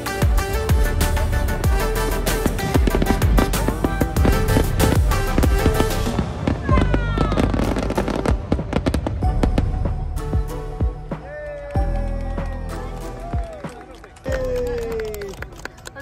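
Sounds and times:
fireworks bursting: 0.0 - 11.3
music: 0.0 - 16.0.

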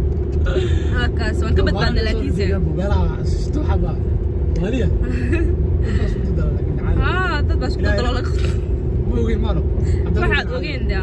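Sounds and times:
car road and engine rumble: 0.0 - 11.0
people talking: 0.5 - 4.0, 5.9 - 11.0.

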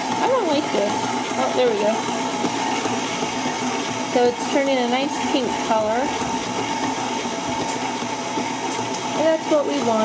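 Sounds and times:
stand mixer motor hum and whine: 0.0 - 10.0.

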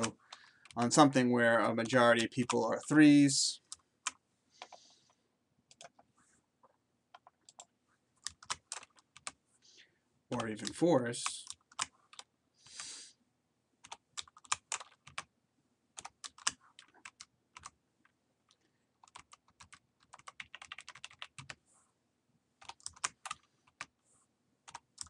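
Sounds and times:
keyboard typing: 0.0 - 2.6, 3.6 - 4.9, 5.7 - 9.4, 10.3 - 12.9, 13.8 - 15.3, 16.0 - 21.6, 22.6 - 23.9, 24.6 - 25.0.

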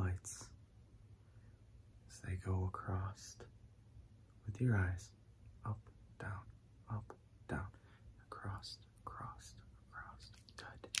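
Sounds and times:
man whispering: 0.0 - 0.6, 2.0 - 3.6, 4.4 - 11.0.

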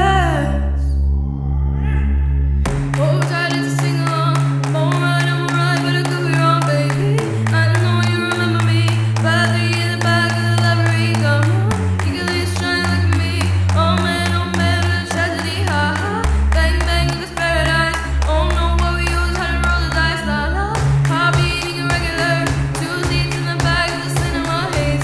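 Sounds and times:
held bass notes: 0.0 - 25.0
sharp percussion beat: 2.7 - 5.0.

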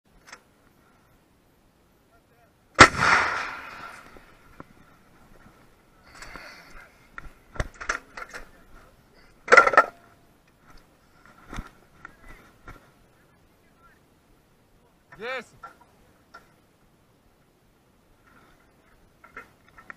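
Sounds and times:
howitzer blast: 2.8 - 4.4.

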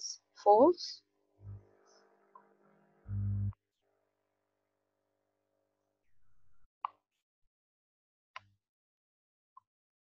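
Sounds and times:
faint low rumble: 3.1 - 3.6.

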